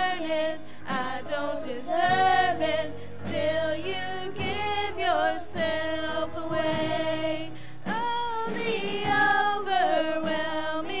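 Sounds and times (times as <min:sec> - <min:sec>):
girls and woman singing together: 0:00.0 - 0:11.0.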